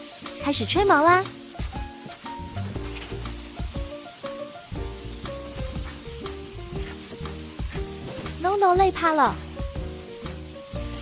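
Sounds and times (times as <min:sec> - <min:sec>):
background music with a beat: 0:01.0 - 0:11.0.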